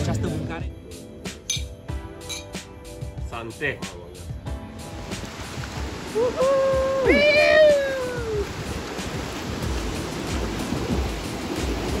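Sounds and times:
ocean surf washing onto beach: 4.8 - 12.0
wind rumble on microphone: 5.3 - 12.0.

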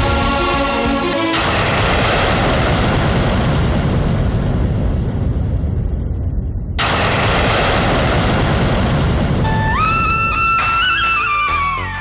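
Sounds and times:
deep rumbling boom: 1.4 - 10.6.

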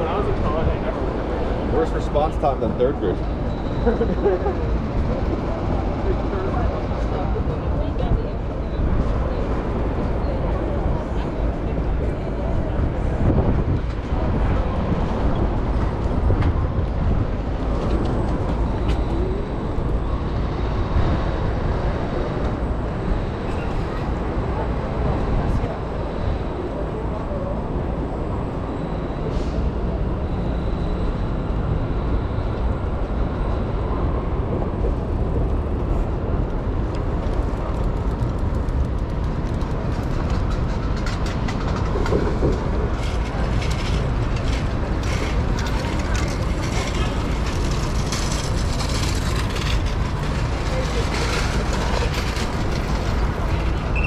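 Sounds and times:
city traffic: 0.0 - 54.0
wind rumble on microphone: 0.0 - 54.0.

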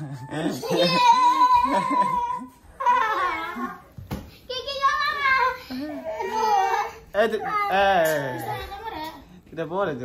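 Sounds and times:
child whining cries: 0.0 - 3.9, 5.4 - 9.0.

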